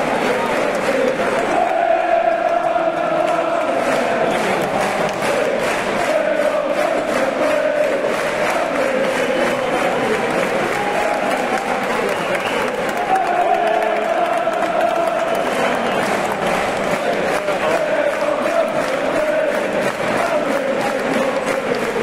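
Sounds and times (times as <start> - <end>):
crowd chanting in unison: 0.0 - 22.0
scattered clapping: 0.0 - 22.0.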